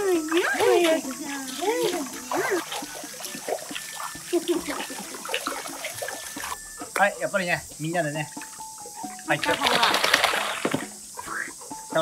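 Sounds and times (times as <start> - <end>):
dog splashing through water: 0.3 - 6.6, 9.1 - 11.0.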